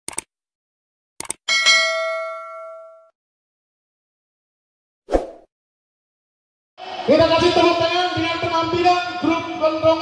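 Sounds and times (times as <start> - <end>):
bright bell ding: 1.5 - 3.1.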